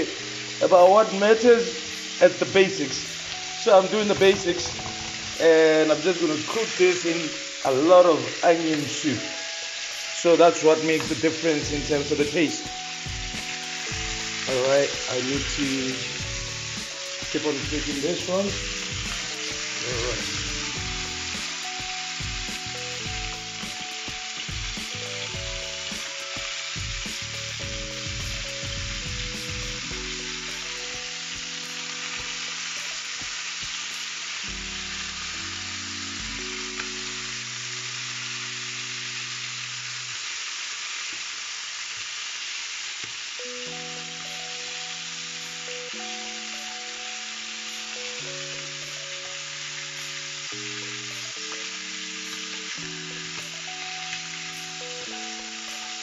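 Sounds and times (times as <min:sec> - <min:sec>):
soft background music: 0:00.0 - 0:40.4, 0:43.4 - 0:56.0
chicken sizzling in oil: 0:00.0 - 0:56.0.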